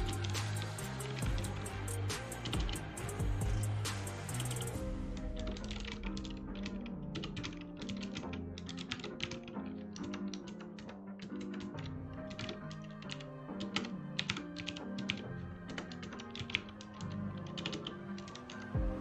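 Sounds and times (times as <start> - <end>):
background music: 0.0 - 19.0
computer keyboard typing: 0.0 - 19.0.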